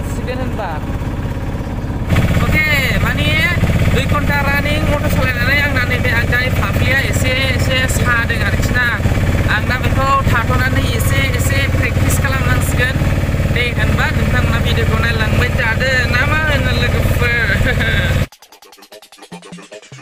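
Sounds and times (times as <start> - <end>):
bus engine drone: 0.0 - 18.3
road noise: 0.0 - 18.3
man talking: 2.2 - 18.3.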